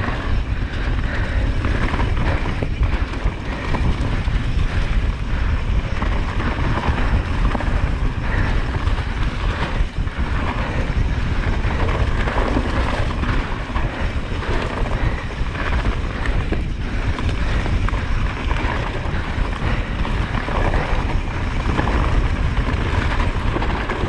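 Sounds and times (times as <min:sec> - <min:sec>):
wind rushing over microphone: 0:00.0 - 0:24.0.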